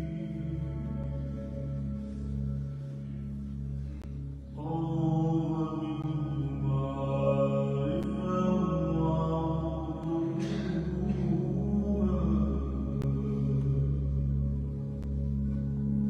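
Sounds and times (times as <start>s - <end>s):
low drone: 0.0s - 16.0s
man singing wordless chant: 4.6s - 14.6s.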